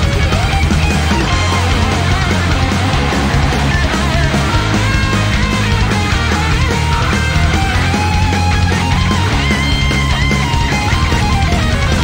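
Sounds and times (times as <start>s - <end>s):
heavy metal band playing: 0.0s - 12.0s
lead guitar bending high notes: 0.0s - 12.0s.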